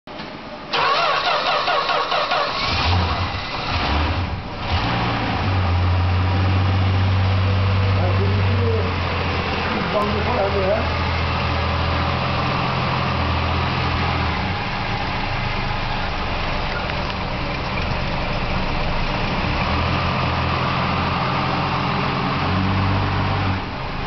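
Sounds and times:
car engine idling: 2.0s - 24.0s.

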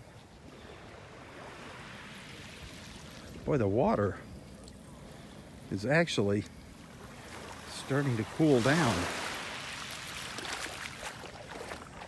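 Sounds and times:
ripples lapping at water's edge: 0.0s - 12.0s.

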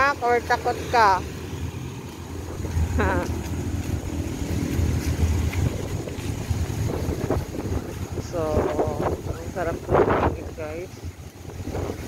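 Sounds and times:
trolley wheels rolling on wet asphalt: 0.0s - 12.0s
wind buffeting microphone: 0.0s - 12.0s.

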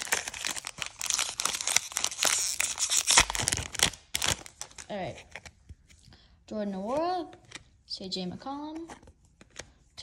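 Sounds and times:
foil wrapper tearing and crinkling: 0.0s - 4.9s.

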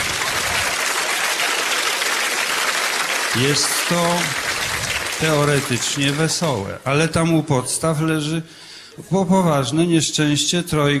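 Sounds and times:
audience applauding: 0.0s - 6.7s.

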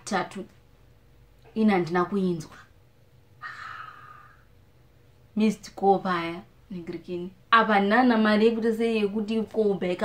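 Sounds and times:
breathy hiss of breath: 3.4s - 4.5s.

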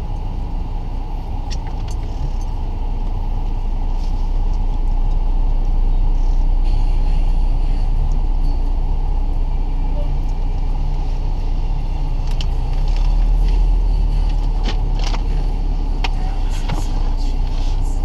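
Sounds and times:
car road rumble from inside: 0.0s - 18.0s.

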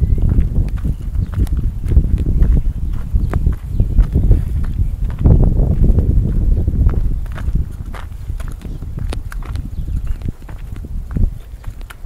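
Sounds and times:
walking footsteps: 0.0s - 12.0s
wind rumble on microphone: 0.0s - 12.0s.

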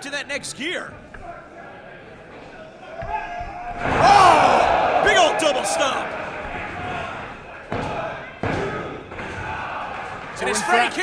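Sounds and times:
noisy crowd: 0.0s - 11.0s.

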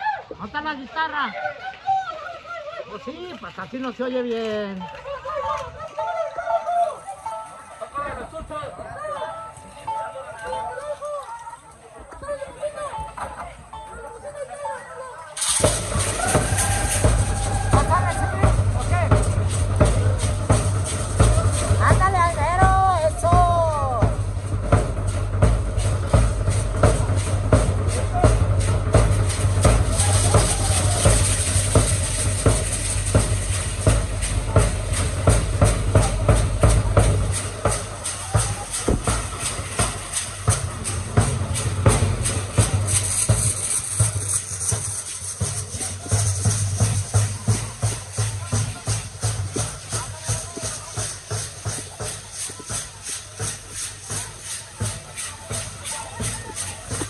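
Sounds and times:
bass drum dance rhythm: 15.4s - 57.0s
gourd rattles shaking: 15.4s - 57.0s.

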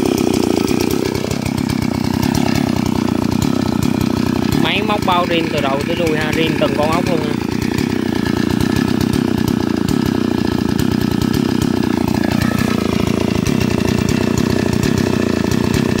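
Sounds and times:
chainsaw idling: 0.0s - 16.0s.

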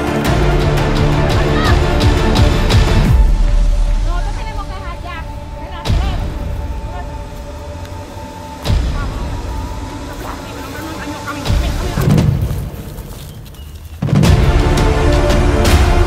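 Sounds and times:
soundtrack music with held notes: 0.0s - 13.2s, 14.2s - 16.0s.

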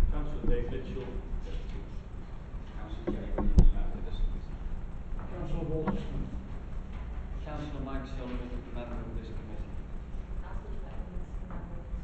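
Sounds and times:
soft knocks: 3.0s - 3.9s, 5.2s - 6.2s
faint indistinct voices: 7.4s - 12.0s.

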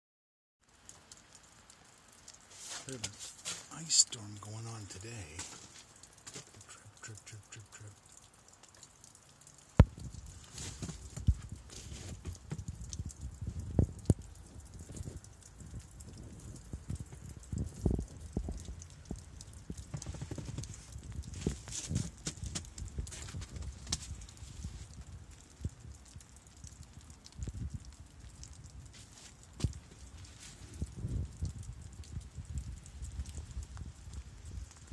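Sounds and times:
wind on microphone: 9.8s - 26.2s, 26.9s - 28.9s, 29.6s - 34.9s.

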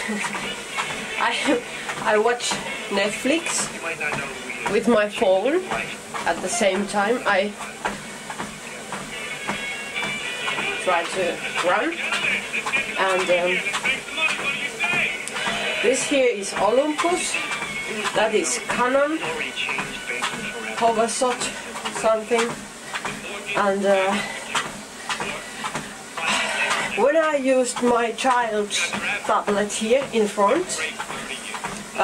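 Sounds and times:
footfalls on treadmill belt: 0.0s - 32.0s
treadmill running: 0.0s - 32.0s.

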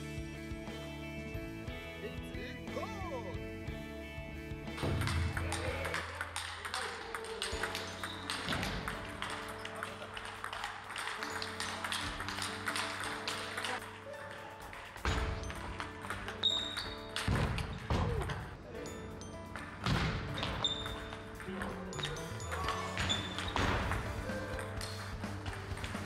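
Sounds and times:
background music: 0.0s - 26.0s.

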